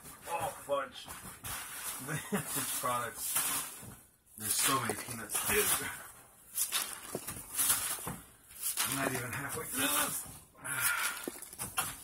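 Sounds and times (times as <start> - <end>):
packing peanuts rustling: 1.5 - 10.3, 10.9 - 12.0.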